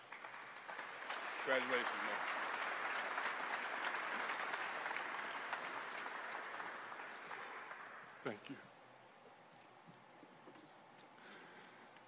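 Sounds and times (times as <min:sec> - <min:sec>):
audience applauding: 0:00.0 - 0:08.5.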